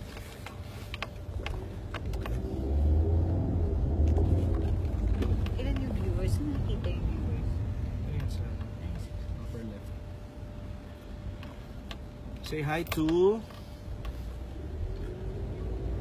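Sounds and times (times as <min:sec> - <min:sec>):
car rumble inside cabin: 0:00.0 - 0:09.4, 0:14.0 - 0:16.0.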